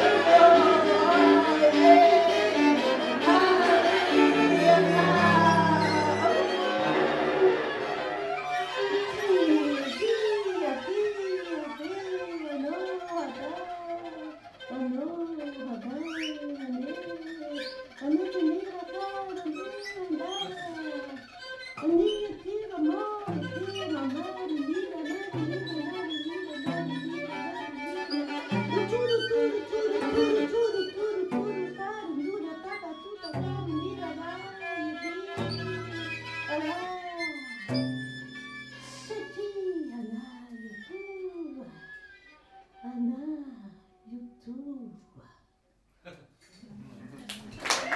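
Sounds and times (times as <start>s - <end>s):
low cello notes: 0.0s - 43.3s
improvised string and voice music: 0.0s - 45.0s.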